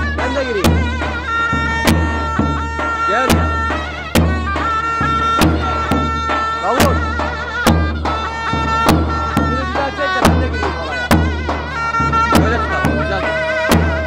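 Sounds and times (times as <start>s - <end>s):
large drum beats: 0.0s - 14.0s
reedy zurna folk tune: 0.0s - 14.0s.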